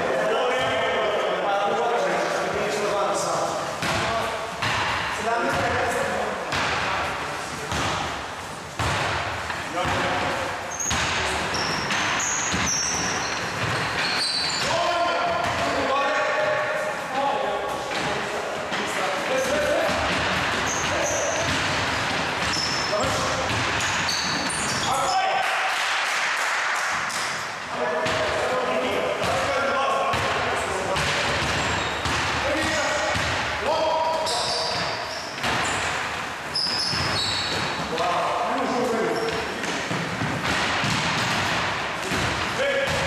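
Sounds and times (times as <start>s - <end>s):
basketball bouncing on wooden floor: 8.8s - 9.2s, 10.8s - 15.8s, 19.8s - 24.9s, 30.1s - 30.4s, 31.0s - 33.5s, 36.6s - 38.0s, 39.2s - 43.0s.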